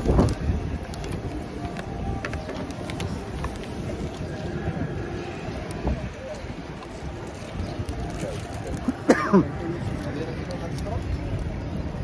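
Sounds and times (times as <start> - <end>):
man clearing his throat: 9.0 - 9.5.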